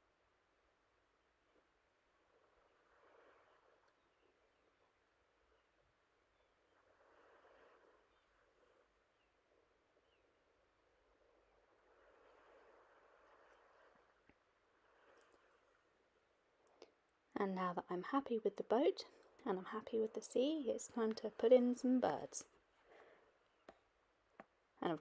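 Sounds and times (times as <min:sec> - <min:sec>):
soft hiss swells: 0:00.0 - 0:25.0.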